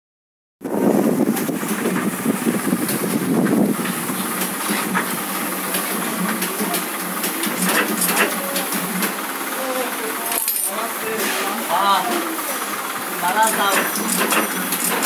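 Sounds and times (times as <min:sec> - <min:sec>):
printing press clatter: 0:01.2 - 0:15.0.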